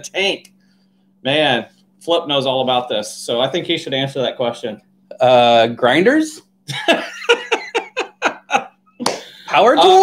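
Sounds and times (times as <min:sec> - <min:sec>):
man laughing: 0:06.7 - 0:09.5.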